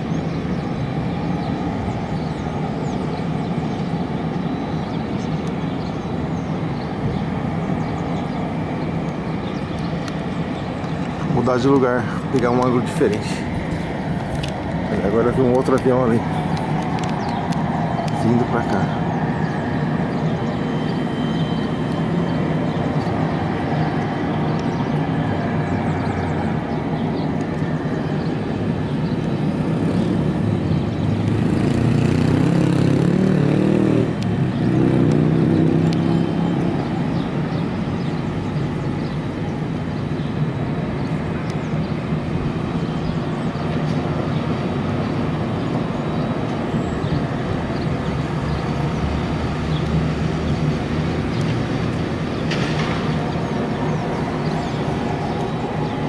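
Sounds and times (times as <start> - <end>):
propeller aircraft engines running: 0.0 - 56.0.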